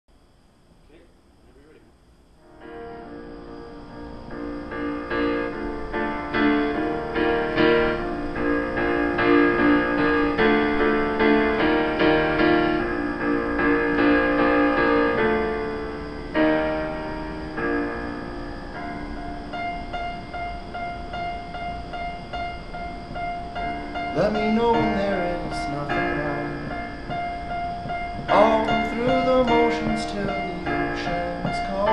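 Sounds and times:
digital piano chords: 0:02.4 - 0:31.9.

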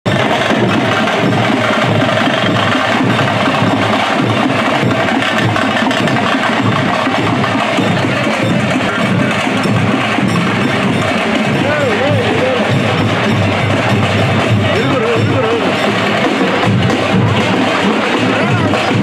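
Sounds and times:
barrel drums drumming: 0:00.0 - 0:19.0
drumstick strikes clattering: 0:00.1 - 0:19.0.

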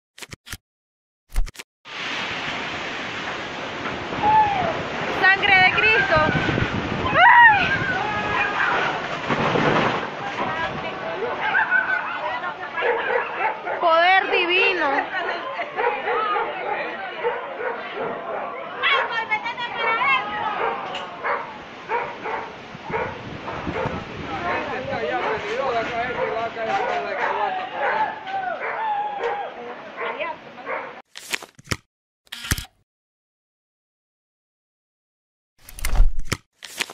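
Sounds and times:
strong wind blowing: 0:04.0 - 0:09.8, 0:19.4 - 0:26.5
people's voices: 0:10.1 - 0:21.7.

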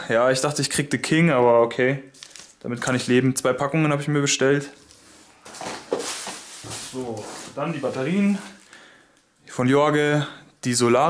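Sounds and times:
plastic bags rustling: 0:02.2 - 0:03.1, 0:04.8 - 0:09.2
items shifting in carton: 0:05.4 - 0:08.6.

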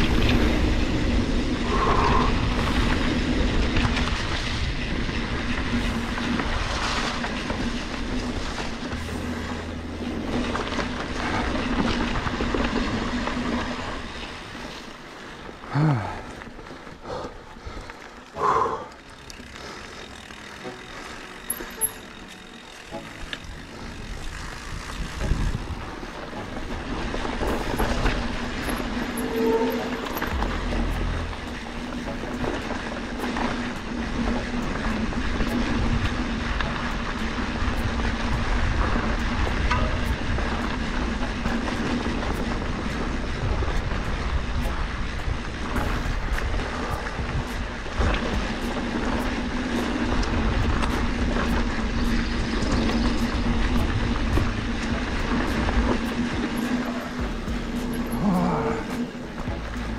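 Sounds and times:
bike rattling over bumps: 0:00.0 - 0:59.9
bike tyres on dirt trail: 0:00.0 - 0:59.9
steady low hum: 0:05.5 - 0:13.9.

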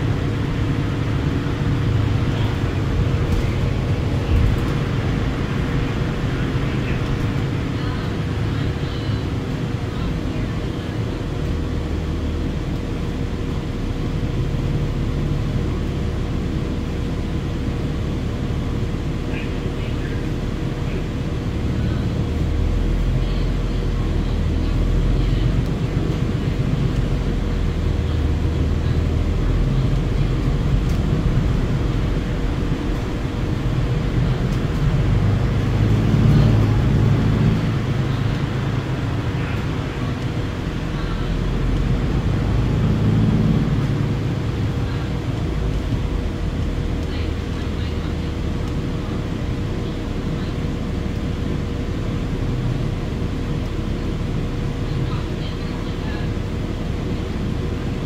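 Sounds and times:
bus drivetrain and road rumble: 0:00.0 - 0:58.0.

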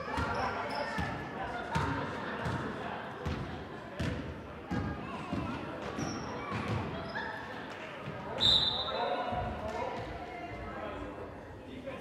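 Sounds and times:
sneaker squeaks: 0:00.0 - 0:01.2, 0:05.9 - 0:07.5, 0:08.3 - 0:09.4.

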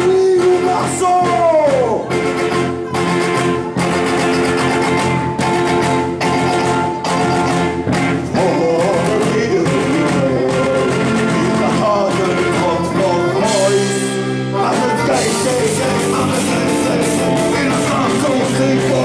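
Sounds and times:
man singing into a microphone: 0:00.0 - 0:02.1, 0:08.2 - 0:19.0
steady beat: 0:00.0 - 0:19.0.

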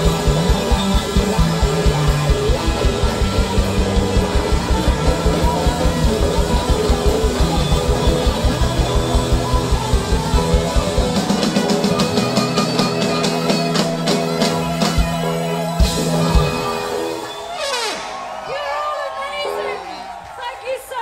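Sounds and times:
fast bass drum beat: 0:00.0 - 0:17.2
funk band with horns playing: 0:00.0 - 0:20.6.

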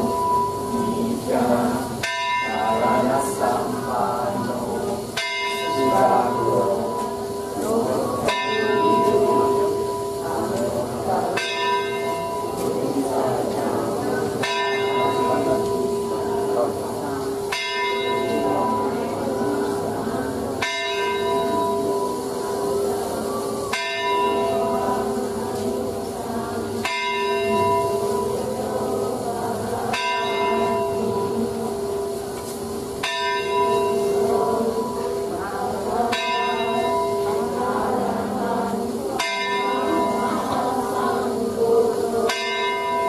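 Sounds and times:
temple bell ringing: 0:00.0 - 0:43.0.

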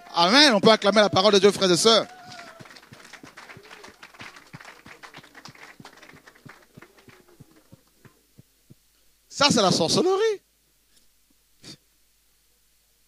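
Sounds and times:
people clapping: 0:00.0 - 0:08.2
faint voices: 0:00.0 - 0:08.5.

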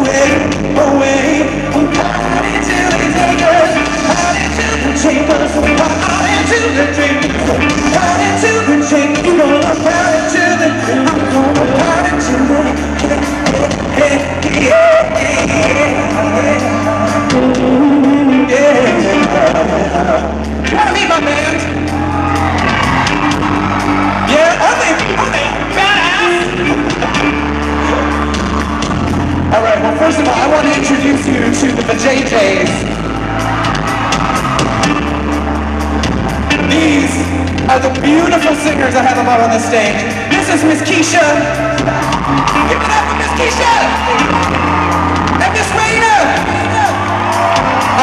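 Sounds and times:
male vocalist singing: 0:00.0 - 0:21.8, 0:24.3 - 0:27.1, 0:29.5 - 0:32.9, 0:36.5 - 0:42.0
guitar: 0:00.0 - 0:48.0
held bass notes: 0:00.0 - 0:48.0
keyboard: 0:00.0 - 0:48.0
person talking on stage: 0:19.2 - 0:22.0, 0:24.2 - 0:26.8, 0:29.4 - 0:33.0, 0:36.5 - 0:44.6, 0:45.2 - 0:47.2.

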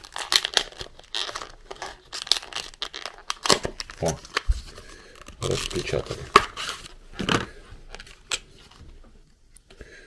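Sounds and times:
plastic packaging crinkling: 0:00.0 - 0:08.8.

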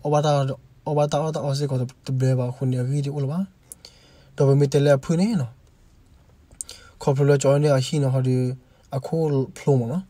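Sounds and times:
man narrating: 0:00.0 - 0:03.5, 0:04.4 - 0:05.6, 0:07.0 - 0:10.0.

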